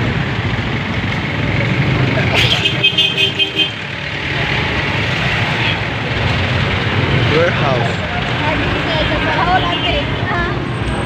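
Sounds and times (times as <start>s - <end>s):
traffic engines rumbling: 0.0s - 11.0s.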